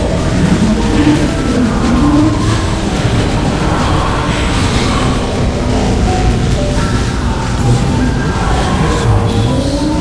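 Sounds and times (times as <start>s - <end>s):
electronic noise wash: 0.0s - 10.0s
low gliding tones: 0.0s - 10.0s.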